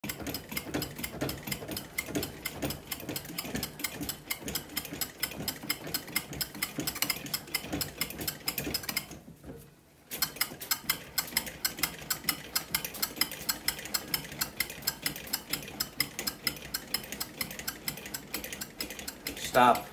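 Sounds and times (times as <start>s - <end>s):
bat rolling machine clicking: 0.0s - 9.2s, 10.1s - 19.9s.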